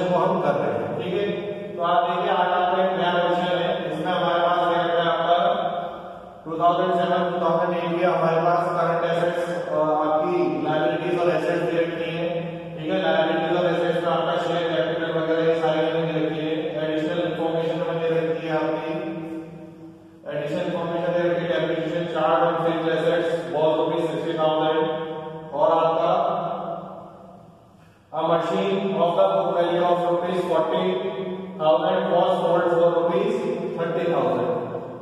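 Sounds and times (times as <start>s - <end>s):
man speaking: 0.0s - 19.4s, 20.2s - 26.8s, 28.1s - 34.8s.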